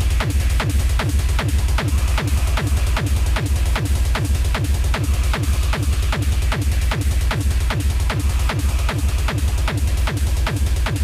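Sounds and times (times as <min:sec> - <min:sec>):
driving kick drum: 0:00.0 - 0:11.0
electronic dance music: 0:00.0 - 0:11.0
heavy bass: 0:00.0 - 0:11.0.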